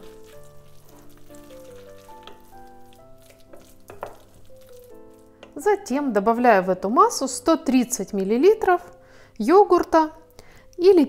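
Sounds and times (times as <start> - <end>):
wooden spatula stirring in glass bowl: 0.0 - 6.0
quiet background music: 0.0 - 11.0.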